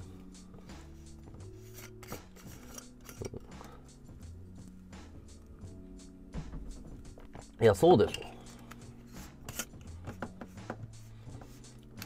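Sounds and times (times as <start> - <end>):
metal drink can clinking: 1.8 - 3.5.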